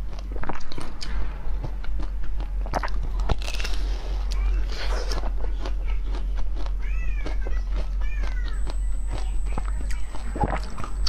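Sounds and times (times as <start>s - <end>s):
chewing and crunching ice: 0.0s - 11.0s.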